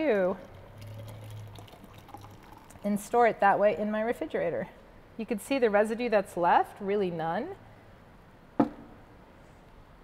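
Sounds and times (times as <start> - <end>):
liquid trickling into a jar: 0.0 - 3.2
low steady hum: 0.0 - 10.0.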